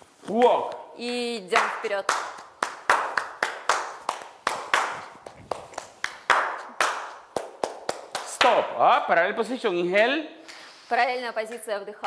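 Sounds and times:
rhythmic hand claps: 0:00.4 - 0:08.7.

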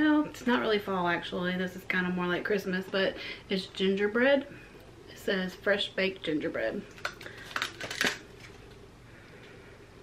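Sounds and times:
plastic packaging crackling: 0:06.9 - 0:08.8.

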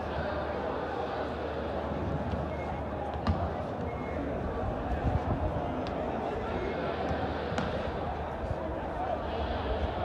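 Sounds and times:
stadium ambience: 0:00.0 - 0:10.0.

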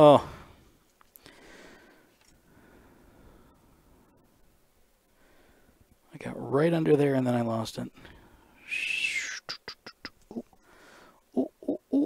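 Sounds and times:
high whistling hiss: 0:08.4 - 0:10.2.

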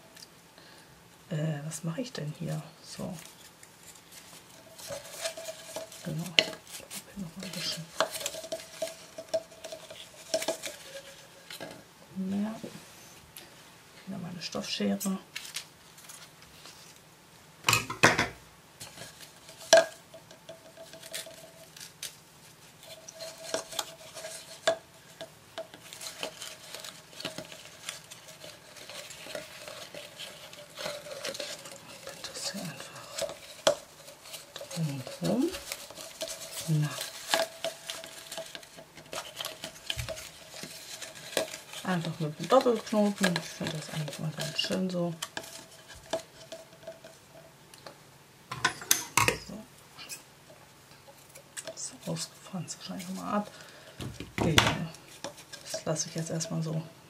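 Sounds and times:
ribbon rustling: 0:02.2 - 0:13.6, 0:15.0 - 0:17.1, 0:18.8 - 0:47.9, 0:48.8 - 0:56.9.

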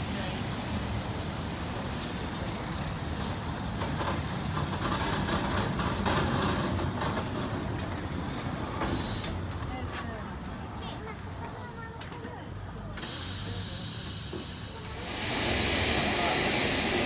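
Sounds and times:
tram wheels rumbling on track: 0:00.0 - 0:17.0
wheels clicking on rails: 0:02.0 - 0:10.1.

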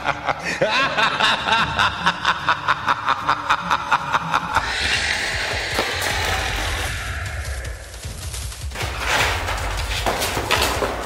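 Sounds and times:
man laughing like a villain: 0:00.0 - 0:05.0.

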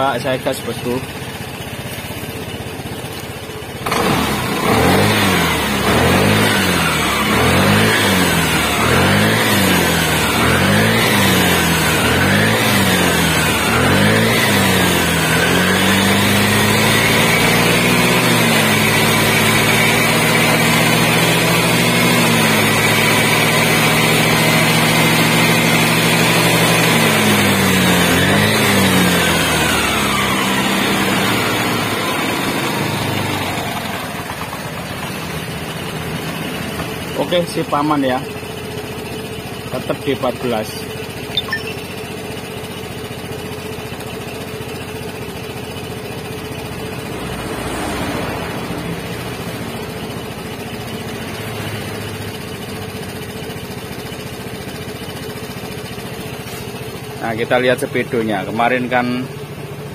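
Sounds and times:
scooter engine revving: 0:00.0 - 0:59.9.

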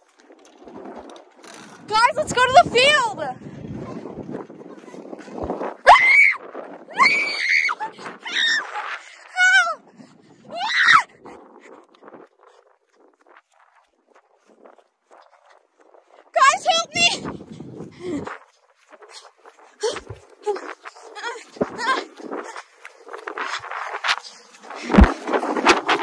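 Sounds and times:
child screaming: 0:05.8 - 0:08.8, 0:10.5 - 0:11.1.

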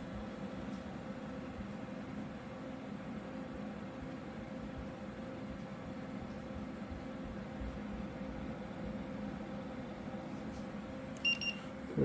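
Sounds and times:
computer fans humming: 0:00.0 - 0:12.0
thermometer beep: 0:11.2 - 0:11.7.

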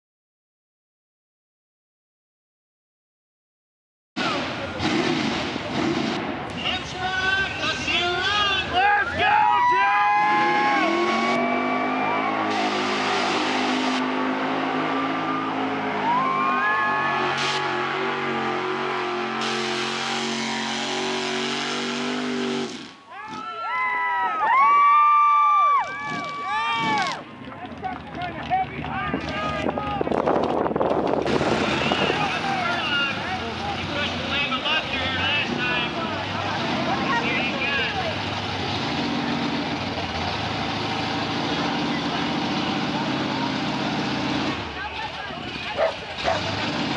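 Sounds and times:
truck engine revving: 0:04.2 - 0:09.1, 0:10.0 - 0:23.1, 0:26.0 - 0:46.9
voices: 0:31.7 - 0:38.3, 0:44.6 - 0:46.6.

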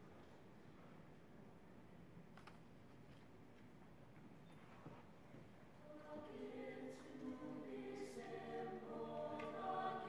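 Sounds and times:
chorale singing in harmony: 0:05.8 - 0:10.0.

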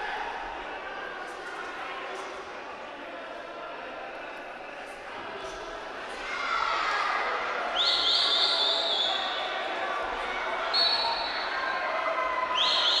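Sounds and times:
referee's whistle blowing: 0:10.7 - 0:11.4.

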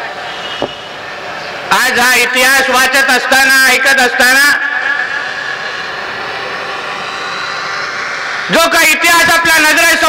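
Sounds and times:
open-air crowd background noise: 0:00.0 - 0:10.0
amplified man's voice echo: 0:01.7 - 0:05.2, 0:08.5 - 0:10.0.

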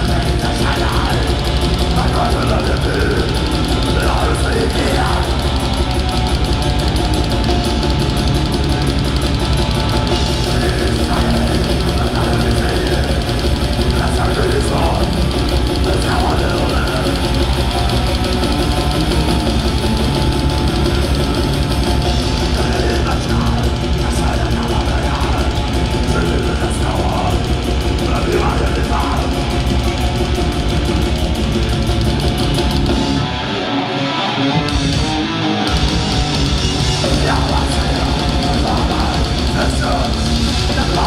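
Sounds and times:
person singing: 0:00.0 - 0:30.2, 0:35.7 - 0:41.0
fast dense drumming: 0:00.0 - 0:33.7, 0:34.6 - 0:41.0
distorted guitars: 0:00.0 - 0:41.0.

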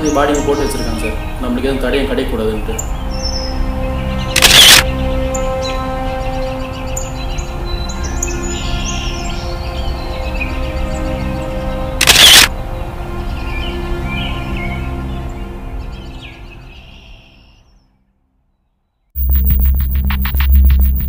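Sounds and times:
sustained held tones music: 0:00.0 - 0:17.2, 0:19.2 - 0:21.0
camera shutter sound effect: 0:04.4 - 0:04.9, 0:12.0 - 0:12.5.

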